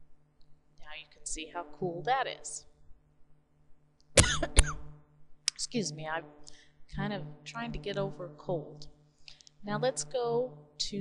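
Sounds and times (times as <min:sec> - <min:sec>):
woman coughing: 0:04.2 - 0:04.9.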